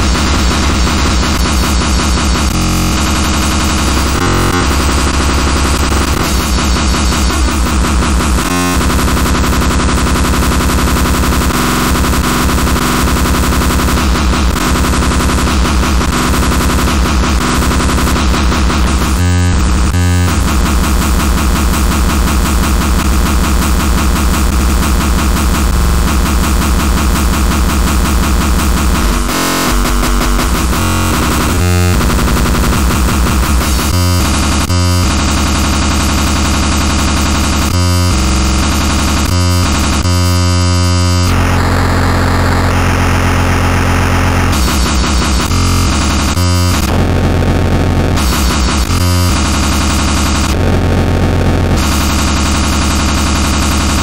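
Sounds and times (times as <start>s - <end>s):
distorted noise: 0.0s - 54.0s
heavy bass: 0.0s - 54.0s.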